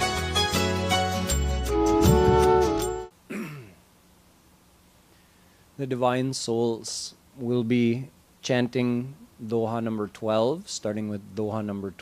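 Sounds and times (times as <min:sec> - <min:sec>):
music: 0:00.0 - 0:03.1
man clearing his throat: 0:03.3 - 0:03.8.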